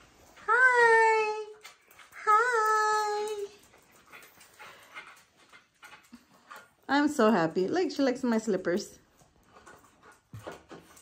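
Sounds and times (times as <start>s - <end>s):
small dogs moving and sniffing: 0.0s - 11.0s
woman speaking: 0.4s - 3.6s, 6.9s - 9.0s.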